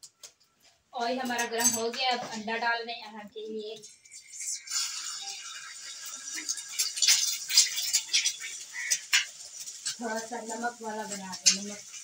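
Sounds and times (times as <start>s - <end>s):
egg sizzling in hot oil: 3.4s - 12.0s.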